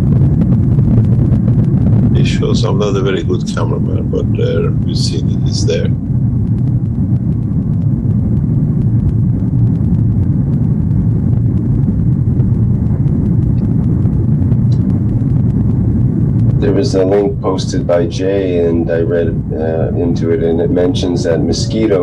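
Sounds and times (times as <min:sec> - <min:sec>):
airliner cabin rumble: 0:00.0 - 0:22.0.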